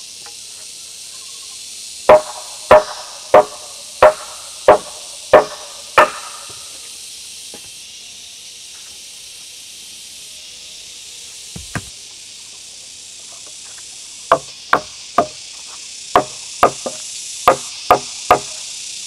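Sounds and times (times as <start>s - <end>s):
high hiss of insects: 0.0s - 19.0s
hammer blows on wood: 2.1s - 6.6s.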